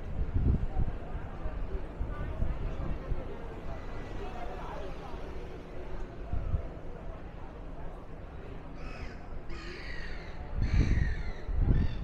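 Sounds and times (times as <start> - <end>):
low street rumble: 0.0 - 12.0
crow cawing: 8.8 - 11.4.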